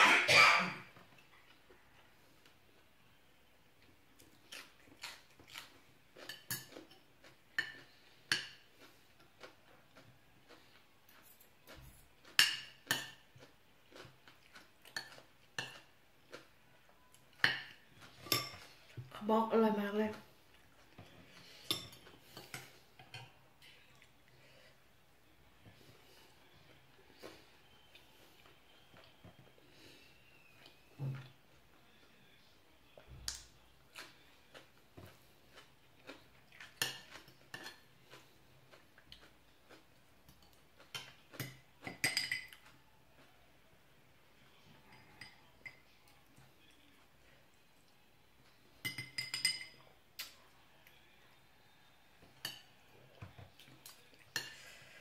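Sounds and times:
cutlery clinking on a plate: 12.2 - 13.3, 17.4 - 18.8, 21.0 - 23.4, 40.4 - 42.7, 48.8 - 49.8, 52.3 - 53.4
spoon clinking on a ceramic plate: 40.9 - 42.7, 48.8 - 49.8.

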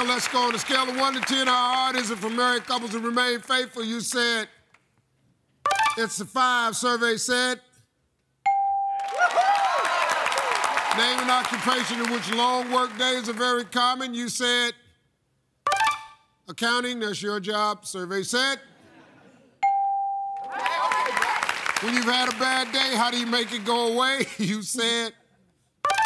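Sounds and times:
game show ding: 5.7 - 6.1, 15.7 - 16.3, 19.6 - 20.7
bell-like ding: 8.5 - 9.0, 19.6 - 20.5
audience whooping and cheering: 9.0 - 13.0, 20.4 - 24.2.

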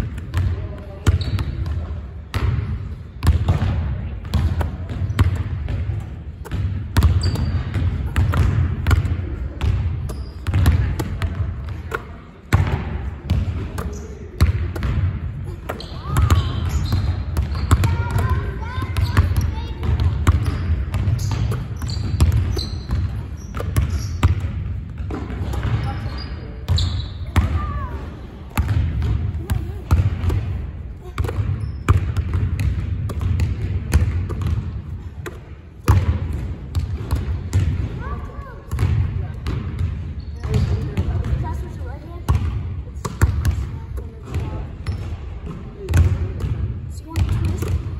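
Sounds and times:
basketballs bouncing on hardwood: 0.2 - 2.6, 3.2 - 27.7, 28.5 - 38.1, 38.7 - 41.6, 42.3 - 47.9.

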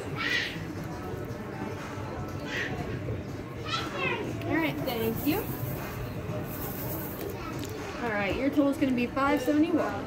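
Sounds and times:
children calling: 0.0 - 0.9
steady background noise: 0.0 - 10.0.

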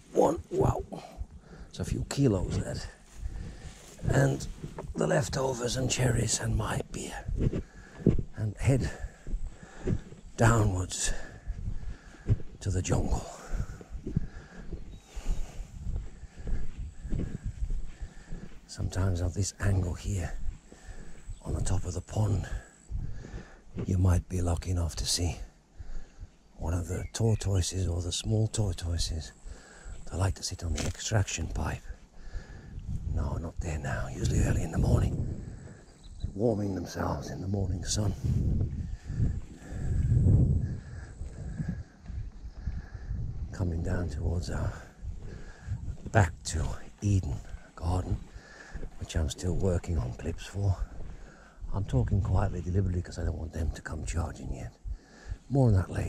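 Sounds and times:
microphone rubbing thuds: 0.0 - 19.0, 19.7 - 24.2, 34.3 - 36.4, 37.7 - 52.5
footsteps on dry grass: 1.2 - 24.4, 29.2 - 53.4.

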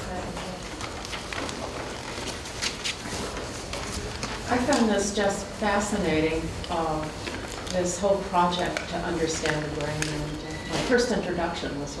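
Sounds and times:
woman speaking: 4.5 - 12.0.

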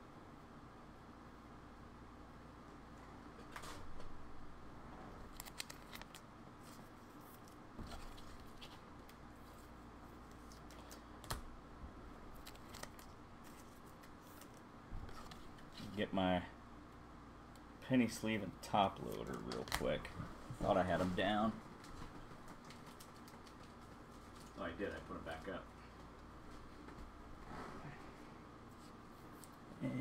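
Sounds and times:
trading cards clicking and rustling: 5.3 - 9.3, 12.4 - 15.9, 19.0 - 20.1, 22.3 - 26.2
man mumbling: 29.8 - 30.0.

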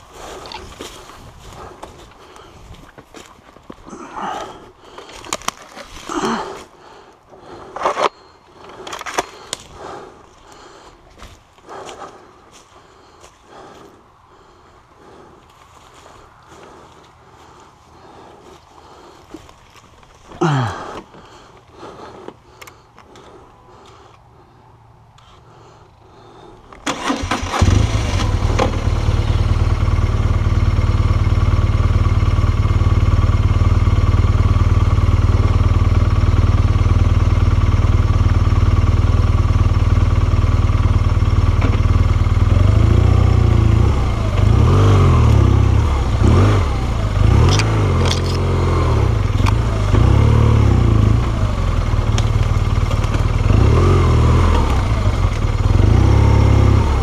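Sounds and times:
motorcycle engine starting and idling: 0.0 - 57.0
motorcycle engine revving: 26.1 - 57.0.

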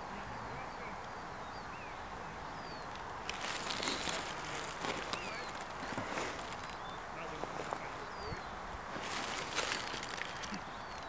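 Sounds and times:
small birds chirping: 0.0 - 11.0
rustling with light knocks: 3.2 - 11.0.

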